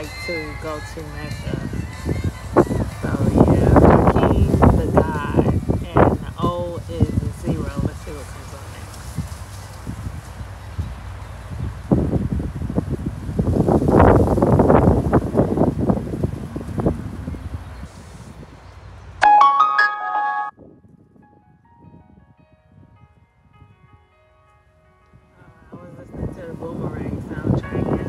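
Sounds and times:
electronic piano-like melody: 19.2s - 20.6s, 21.2s - 25.7s.

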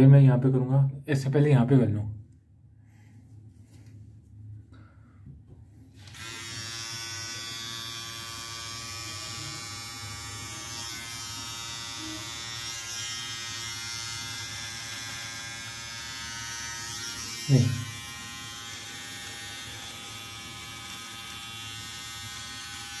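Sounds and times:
beard trimmer buzzing: 6.0s - 23.0s.

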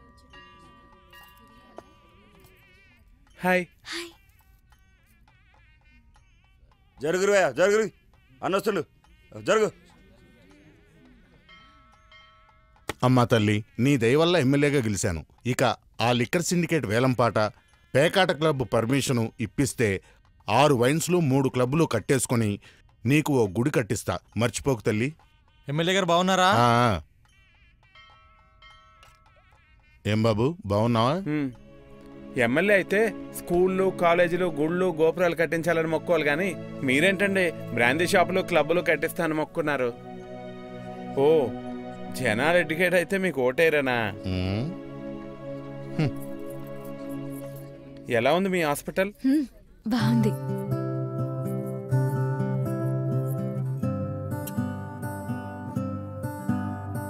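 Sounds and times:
soundtrack music with quavering tone: 30.7s - 48.8s, 49.9s - 57.0s.

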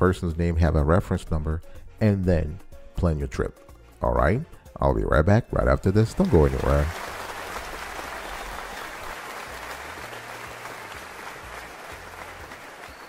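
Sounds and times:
crowd applause: 6.1s - 13.0s.

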